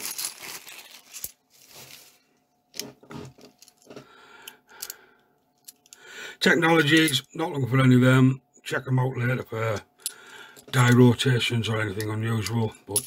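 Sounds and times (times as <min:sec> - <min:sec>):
plastic bag crinkling: 0:00.0 - 0:02.3.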